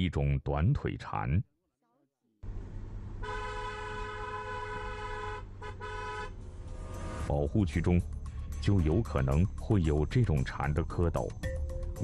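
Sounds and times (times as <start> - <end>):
car horn honking: 3.2 - 7.3
vehicle driving rumble: 3.9 - 8.6.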